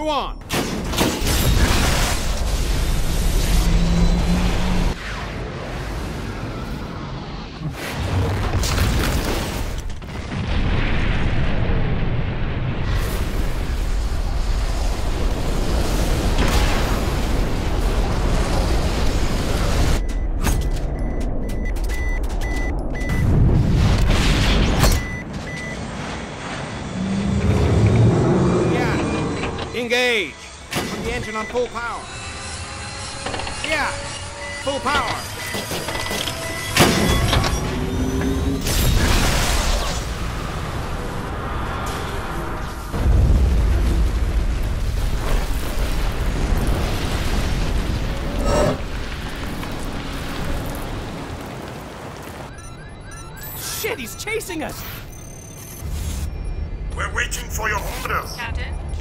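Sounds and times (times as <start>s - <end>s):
loud explosion booms: 8.0s - 19.9s, 42.9s - 51.8s
high electronic warning beeps: 20.0s - 23.3s, 24.8s - 25.8s, 28.7s - 38.6s, 52.5s - 59.0s.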